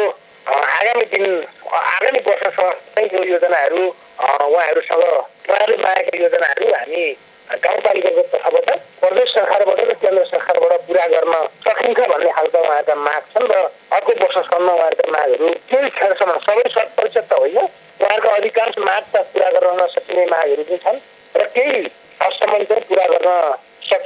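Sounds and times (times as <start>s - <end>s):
person talking over radio: 0.0s - 24.0s.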